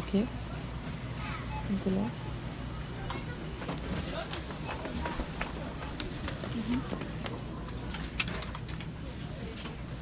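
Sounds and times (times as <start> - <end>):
faint voices: 0.1 - 10.0.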